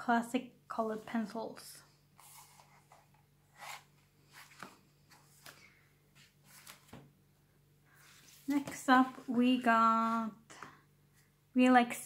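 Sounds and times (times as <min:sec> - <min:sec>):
soft paper rustles: 0:02.2 - 0:07.2, 0:07.9 - 0:10.7.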